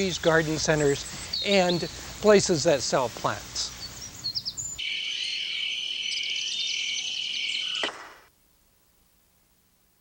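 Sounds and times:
insects chirping: 0:00.0 - 0:09.5
short bird chirps: 0:03.8 - 0:08.2.

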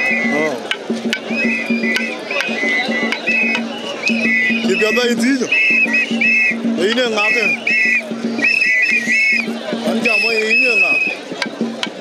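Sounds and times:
rhythmic traditional singing: 0:00.0 - 0:12.0.

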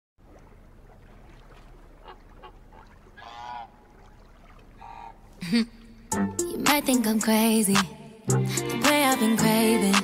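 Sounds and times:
woman laughing: 0:05.4 - 0:05.8.

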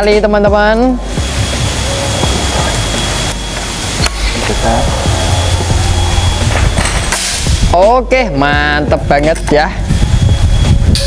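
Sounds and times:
air compressor running: 0:00.8 - 0:07.9.

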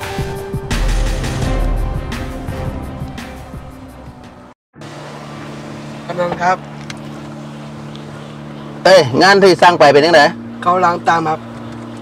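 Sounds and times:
music: 0:00.0 - 0:04.6, 0:07.4 - 0:12.0
vehicle engine idling: 0:00.0 - 0:12.0.

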